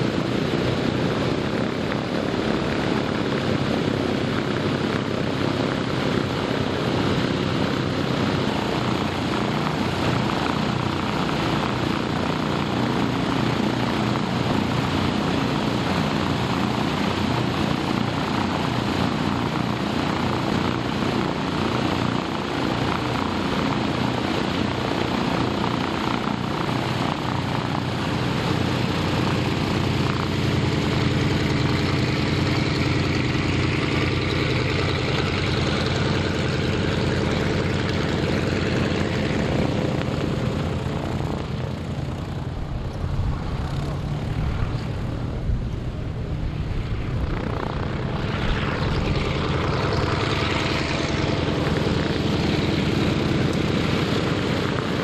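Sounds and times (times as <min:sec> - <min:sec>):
propeller aircraft engines running: 0:00.0 - 0:55.0.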